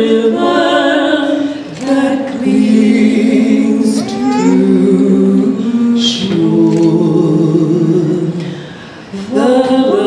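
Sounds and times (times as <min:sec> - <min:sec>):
two women singing in harmony: 0:00.0 - 0:10.0.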